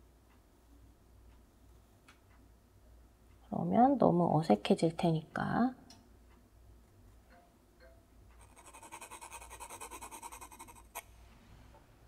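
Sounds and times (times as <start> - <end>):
pencil scratching on paper: 8.4 - 11.1.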